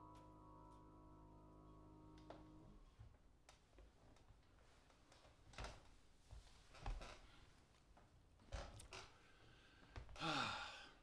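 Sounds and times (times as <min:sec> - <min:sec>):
man sighing: 0:10.2 - 0:11.0.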